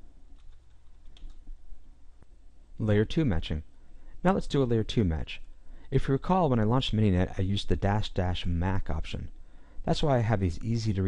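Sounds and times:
low steady hum: 0:00.0 - 0:11.0
computer keyboard keystrokes: 0:00.3 - 0:01.4.

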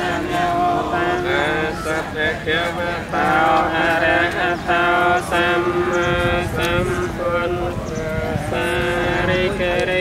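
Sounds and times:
monks chanting in unison: 0:00.0 - 0:10.0.

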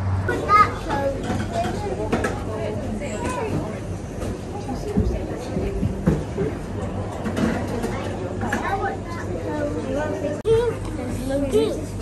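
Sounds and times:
children chattering: 0:00.2 - 0:12.0
high-pitched child's voice: 0:00.3 - 0:01.2, 0:10.4 - 0:12.0.

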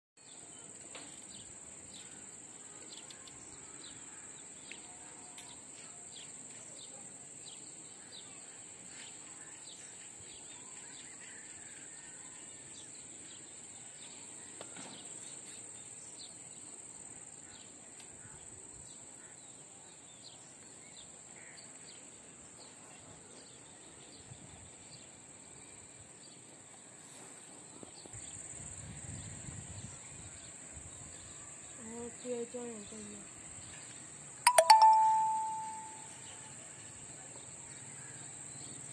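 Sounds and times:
faint chirps: 0:34.5 - 0:36.4.

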